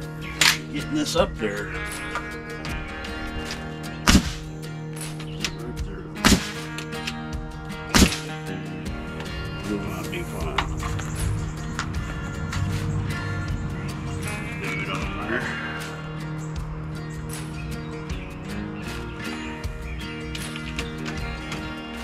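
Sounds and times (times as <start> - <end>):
pneumatic nailer firing: 6.2 - 6.6, 8.0 - 8.3.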